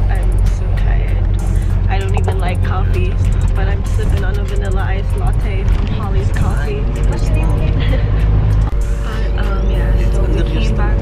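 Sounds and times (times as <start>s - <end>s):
bus engine and road noise: 0.0s - 11.0s
music beat: 0.0s - 11.0s.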